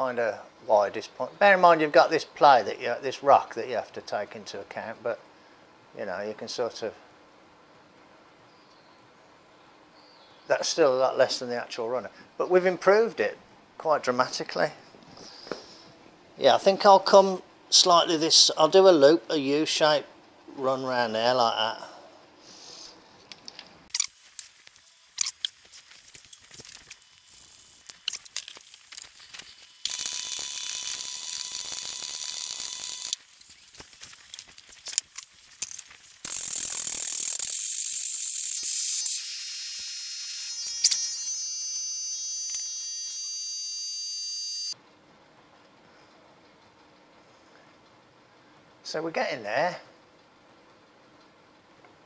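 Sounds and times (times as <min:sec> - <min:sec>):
electric welding arc: 0:23.9 - 0:44.8.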